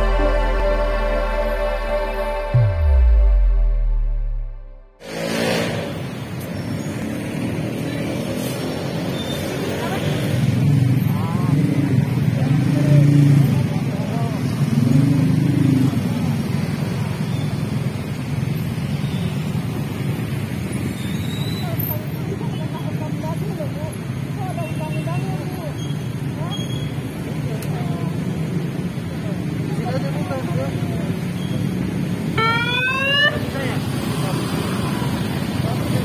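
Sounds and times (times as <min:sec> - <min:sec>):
motorcycle and car engines passing: 0:00.0 - 0:36.0
steady road noise: 0:00.0 - 0:36.0
people talking: 0:11.1 - 0:14.5, 0:21.6 - 0:26.7, 0:27.4 - 0:28.3.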